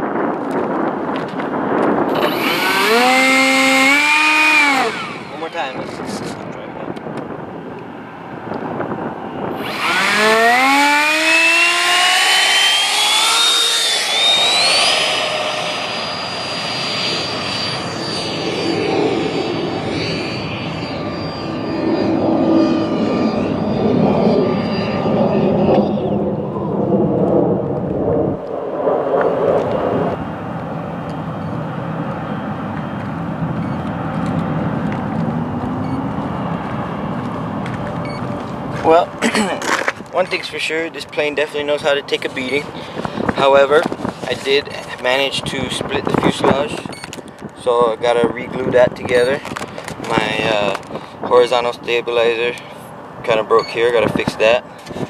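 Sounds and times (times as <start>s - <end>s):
electric ducted fan whining: 0.0s - 55.0s.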